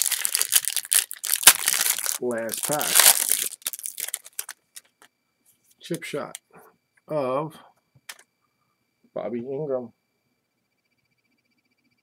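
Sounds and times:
foil wrapper crinkling: 0.0 - 5.0.

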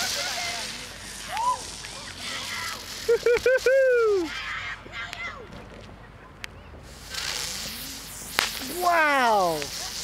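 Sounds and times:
firework spraying sparks hissing: 0.0 - 4.5, 6.8 - 10.0
firework crack: 0.0 - 10.0
person shouting wow: 8.6 - 9.7.

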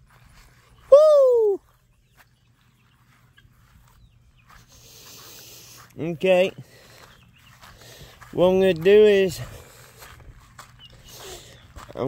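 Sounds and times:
faint bird chirps: 0.2 - 5.9.

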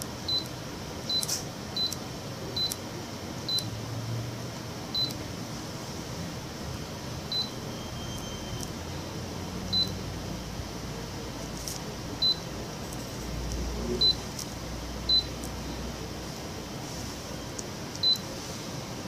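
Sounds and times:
steady background hiss: 0.0 - 19.0
short high key-press beeps: 0.3 - 0.5, 1.1 - 2.0, 2.6 - 2.8, 3.5 - 3.7, 4.9 - 5.2, 7.3 - 8.8, 9.7 - 10.0, 12.2 - 12.4, 14.0 - 14.2, 15.1 - 15.4, 17.5 - 18.2.

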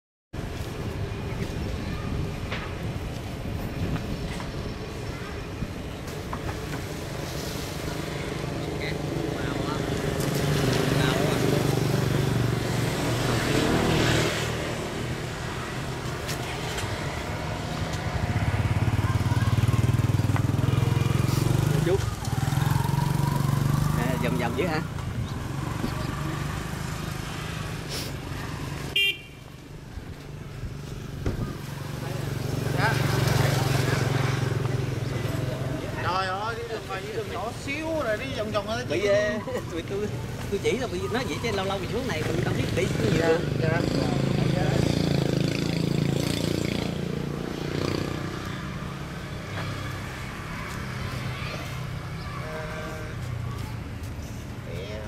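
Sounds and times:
vehicles passing: 0.4 - 55.0
car horn toot: 29.0 - 29.4.

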